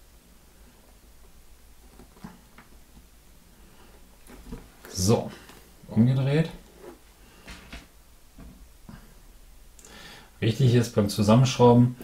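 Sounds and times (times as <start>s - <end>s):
rubber tyre handling rustles: 3.7s - 5.9s
man speaking: 4.8s - 6.6s, 10.4s - 12.0s.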